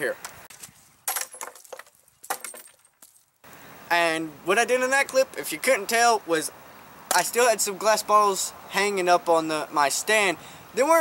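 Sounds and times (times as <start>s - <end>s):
glass bottles breaking: 1.0s - 3.3s.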